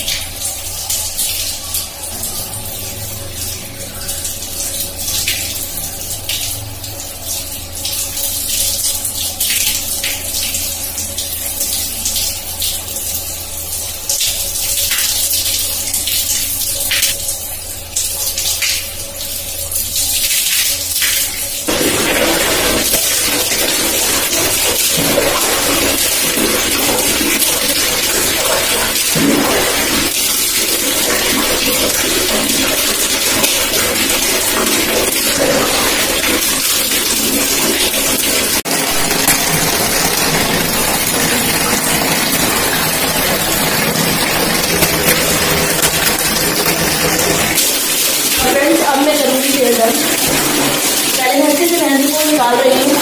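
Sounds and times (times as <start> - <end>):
tap water splashing into bucket: 0.0 - 53.0.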